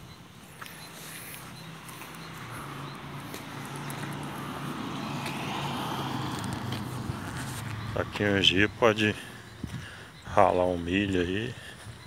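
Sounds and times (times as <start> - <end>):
vehicle engine running: 0.0 - 11.8.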